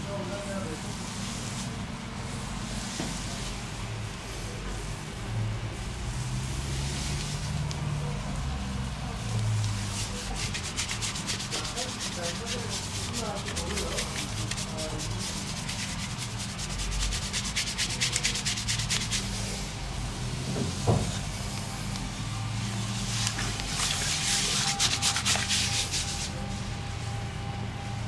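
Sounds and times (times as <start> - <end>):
fingers scrubbing lathered scalp: 9.6 - 19.6, 21.4 - 26.3.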